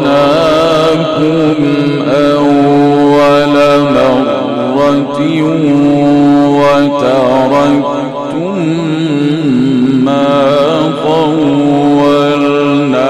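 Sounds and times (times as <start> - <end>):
man reciting melodically: 0.0 - 13.0.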